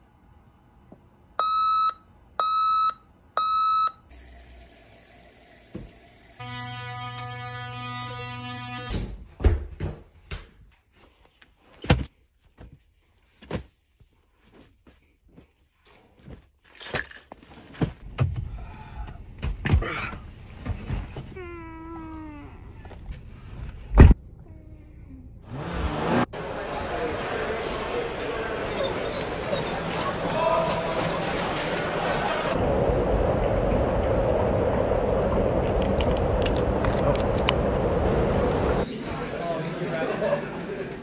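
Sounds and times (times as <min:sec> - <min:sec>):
alarm clock beeping: 0:01.4 - 0:04.0
electric toothbrush buzzing: 0:06.4 - 0:08.9.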